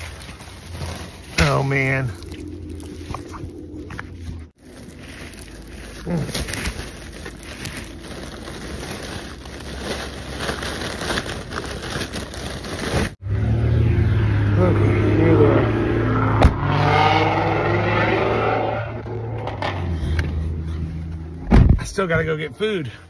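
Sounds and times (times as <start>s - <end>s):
car engine hum: 0.0s - 8.8s, 13.2s - 21.8s
foil balloons crinkling: 0.0s - 13.2s.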